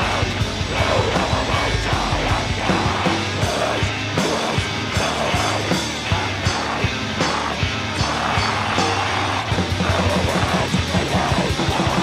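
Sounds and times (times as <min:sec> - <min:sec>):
fast drum hits: 0:00.0 - 0:12.0
heavy rock song: 0:00.0 - 0:12.0.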